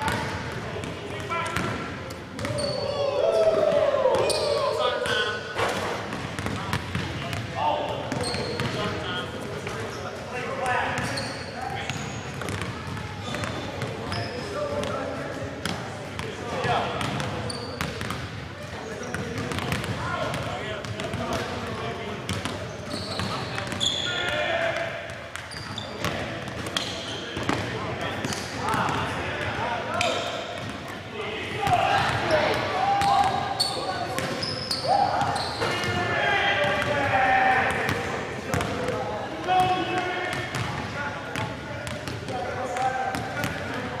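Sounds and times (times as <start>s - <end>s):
basketballs bouncing on hardwood: 6.1s - 7.5s, 11.9s - 14.0s, 17.0s - 18.2s, 19.1s - 21.5s, 36.6s - 39.0s, 40.3s - 40.8s.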